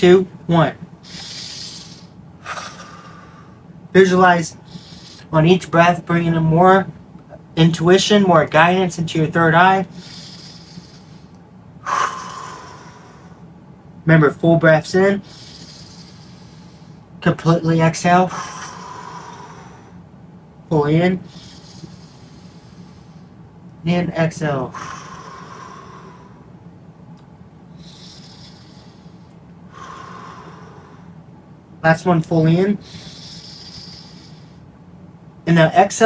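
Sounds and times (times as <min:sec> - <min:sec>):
loud breathy exhale: 0:01.0 - 0:03.6, 0:09.9 - 0:13.4, 0:15.2 - 0:17.0, 0:18.3 - 0:20.0, 0:21.2 - 0:23.3, 0:24.7 - 0:26.5, 0:27.8 - 0:31.2, 0:32.8 - 0:34.6
man breathing in: 0:01.0 - 0:03.7, 0:04.6 - 0:05.3, 0:09.9 - 0:13.5, 0:15.2 - 0:17.1, 0:18.3 - 0:20.0, 0:21.2 - 0:23.4, 0:24.7 - 0:26.6, 0:27.7 - 0:31.2, 0:32.8 - 0:34.7.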